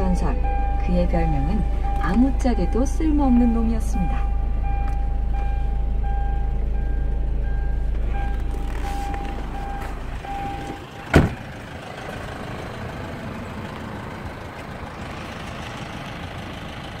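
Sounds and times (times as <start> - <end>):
car warning chime beeping: 0.0 - 11.4
car door slamming: 8.0 - 11.4.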